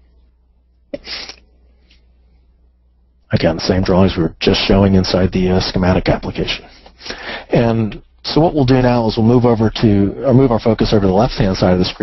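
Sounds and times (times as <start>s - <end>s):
faint microphone hum: 0.0s - 12.0s
puff of breath: 6.7s - 7.5s.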